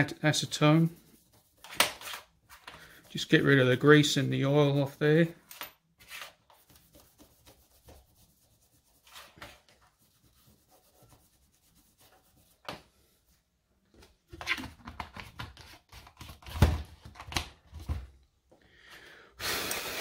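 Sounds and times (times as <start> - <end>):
cloth rubbing on metal plates: 6.0 - 13.5.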